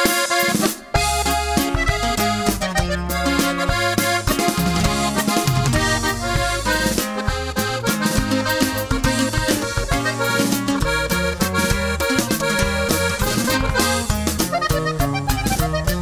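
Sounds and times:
accordion melody: 0.0 - 16.0
steady rhythm backing: 0.0 - 16.0
stepping bass line: 0.0 - 16.0.

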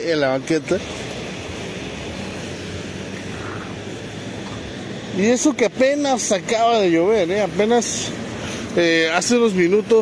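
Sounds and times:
constant hiss: 0.0 - 10.0
low hum of passing traffic: 0.0 - 10.0.

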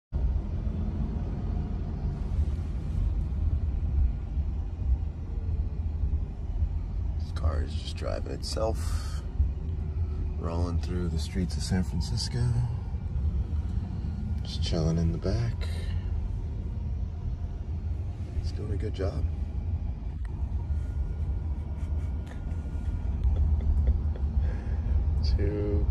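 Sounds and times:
car road noise rumble: 0.1 - 25.9.

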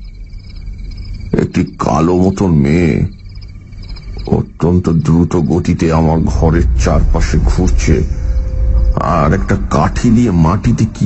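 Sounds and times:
frogs calling: 0.0 - 11.0
low hum: 0.0 - 11.0
man's voice: 1.3 - 3.2, 4.2 - 11.0.

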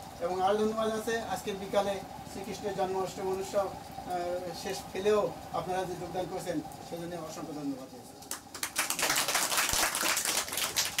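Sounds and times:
people applauding: 8.3 - 11.0.

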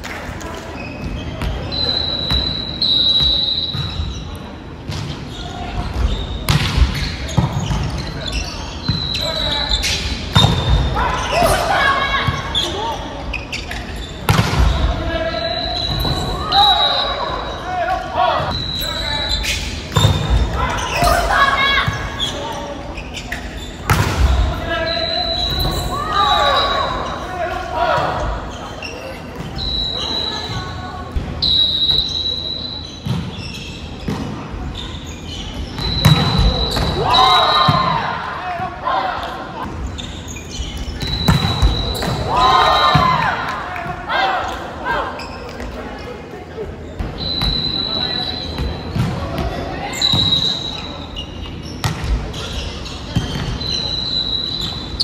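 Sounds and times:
volleyball hits: 5.8 - 8.0, 10.3 - 12.4, 14.3 - 15.0, 19.9 - 22.1, 23.8 - 24.7, 35.8 - 38.0, 40.8 - 44.6
players shouting: 24.1 - 28.7, 41.1 - 45.2.

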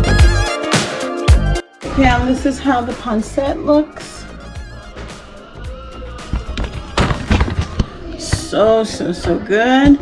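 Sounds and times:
background music: 0.0 - 10.0
sharp knocks and thumps: 6.3 - 10.0.

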